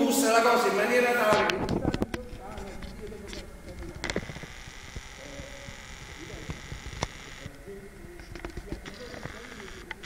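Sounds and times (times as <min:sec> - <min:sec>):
faint voices: 0:00.9 - 0:10.0
camera zoom motor whining: 0:04.0 - 0:07.6, 0:08.8 - 0:10.0.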